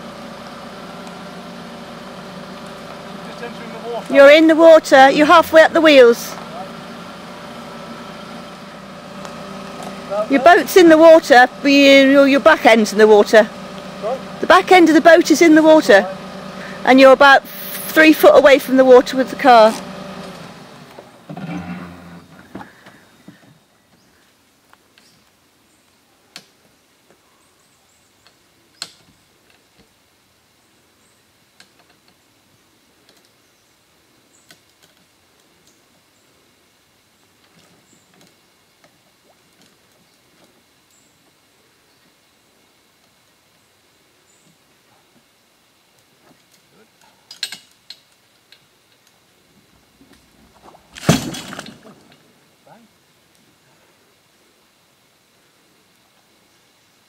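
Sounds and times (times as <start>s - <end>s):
metallic winch clicks and knocks: 47.3s - 48.1s.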